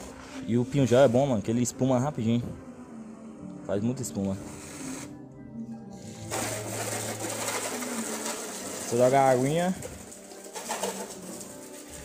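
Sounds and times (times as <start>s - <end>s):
hose nozzle spraying water: 6.2s - 12.0s.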